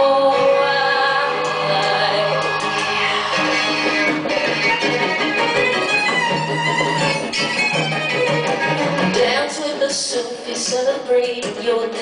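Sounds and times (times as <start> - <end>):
bowed and plucked strings: 0.0 - 12.0.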